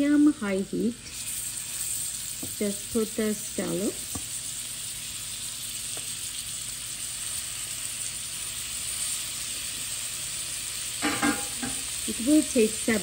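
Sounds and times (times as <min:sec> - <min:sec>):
scallops sizzling in butter: 0:00.0 - 0:13.0.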